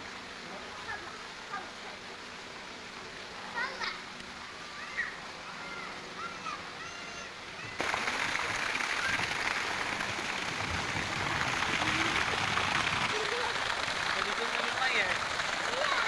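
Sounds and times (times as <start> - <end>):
loud steady rushing noise: 7.8 - 16.0.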